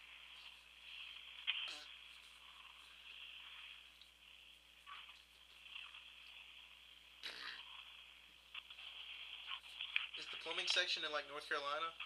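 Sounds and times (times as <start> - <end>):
telephone line hiss: 0.0 - 6.5.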